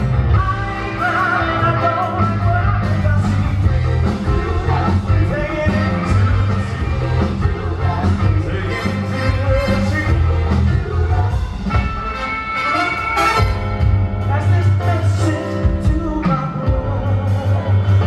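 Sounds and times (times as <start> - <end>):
person singing: 0.0 - 12.1, 14.2 - 18.0
drums: 0.0 - 18.0
keyboards: 0.0 - 18.0
saxophone: 11.7 - 14.0.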